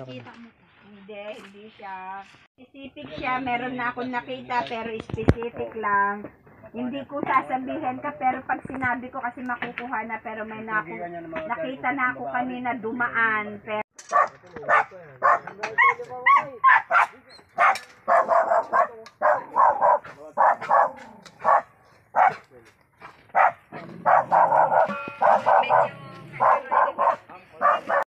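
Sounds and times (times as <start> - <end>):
dog barking: 14.1 - 22.5, 23.3 - 28.0.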